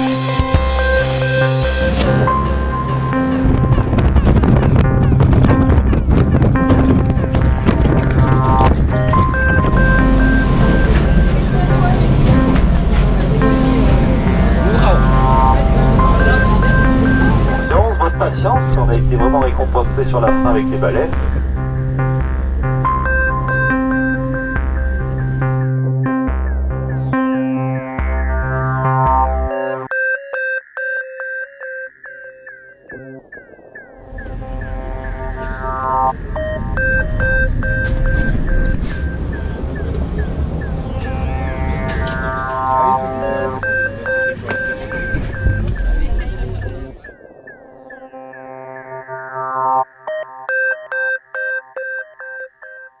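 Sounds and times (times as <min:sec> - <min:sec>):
bass line: 0:00.0 - 0:30.0, 0:32.0 - 0:51.7
sustained chords: 0:00.0 - 0:52.7
repeated high notes: 0:00.0 - 0:53.0.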